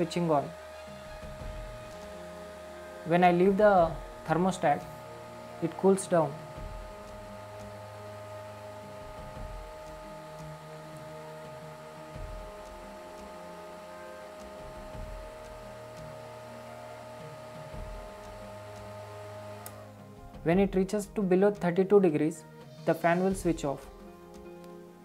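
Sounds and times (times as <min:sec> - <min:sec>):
cooling fan whining: 0:00.0 - 0:21.5
faint background music: 0:00.0 - 0:25.0.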